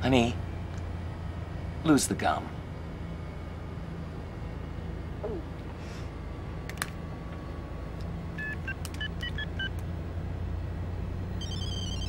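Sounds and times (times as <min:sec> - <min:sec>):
bus engine rumble: 0:00.0 - 0:12.0
phone electronic beeps: 0:08.4 - 0:09.7, 0:11.4 - 0:12.0.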